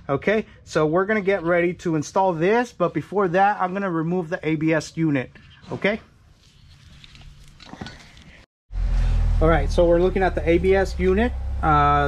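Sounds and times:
loud steady low hum: 8.7s - 12.0s.

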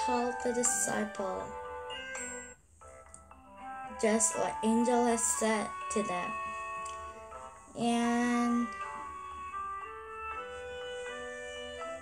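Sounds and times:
soft ringing background music: 0.0s - 12.0s.

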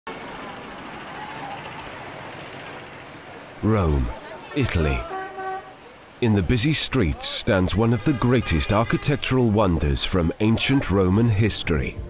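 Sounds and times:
city street noise: 0.1s - 12.0s
faint voices: 3.6s - 12.0s.

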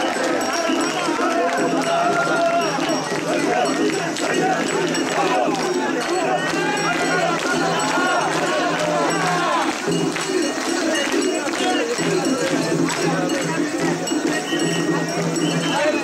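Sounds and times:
dense crowd noise: 0.0s - 16.0s
people shouting a rhythmic chant: 0.0s - 16.0s.

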